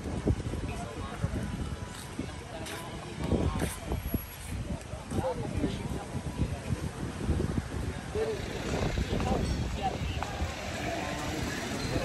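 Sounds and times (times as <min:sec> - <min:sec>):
people talking indistinctly: 0:00.4 - 0:12.0.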